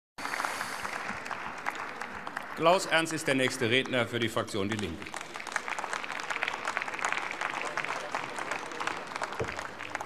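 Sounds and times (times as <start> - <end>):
many hands clapping: 0.2 - 10.0.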